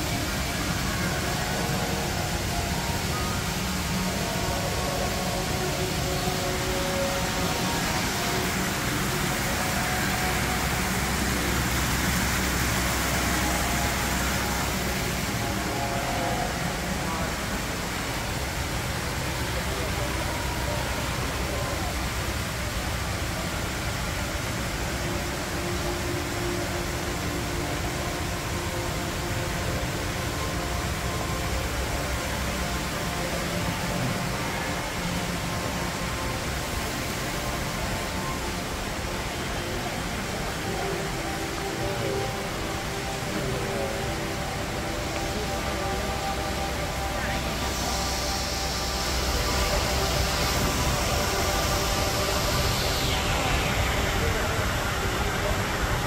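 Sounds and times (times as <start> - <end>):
people chattering: 0.0 - 23.8, 30.4 - 56.0
low hum and hiss: 0.0 - 56.0.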